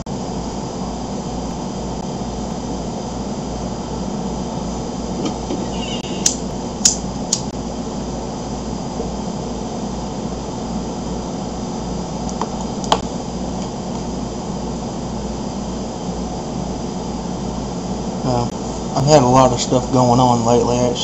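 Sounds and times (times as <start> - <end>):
room hiss and hum: 0.0 - 21.0.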